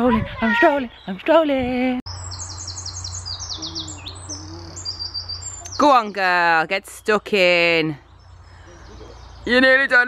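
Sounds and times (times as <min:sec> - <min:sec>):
songbird singing: 0:00.4 - 0:10.0.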